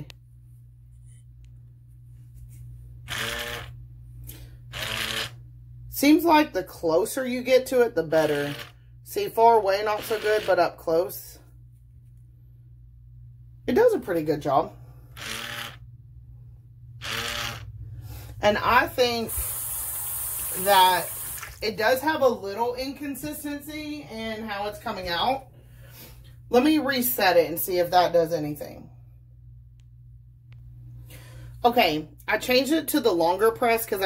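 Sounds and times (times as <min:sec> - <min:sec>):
faint low hum: 0:00.0 - 0:19.4, 0:21.0 - 0:33.7
soap dispenser pump motor: 0:03.0 - 0:06.2, 0:07.6 - 0:10.9, 0:15.1 - 0:15.9, 0:17.0 - 0:21.7.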